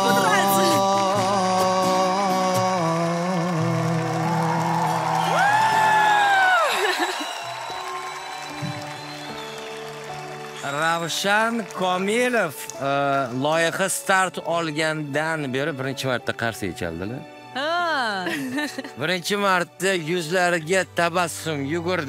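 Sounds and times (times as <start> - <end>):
man singing: 0.0 - 5.1
acoustic guitar: 0.0 - 5.2.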